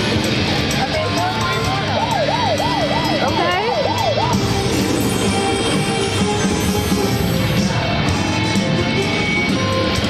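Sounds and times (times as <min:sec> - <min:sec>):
casino background music: 0:00.0 - 0:10.0
slot machine warbling tone: 0:01.4 - 0:07.7
rising electronic sweeps: 0:02.0 - 0:07.8.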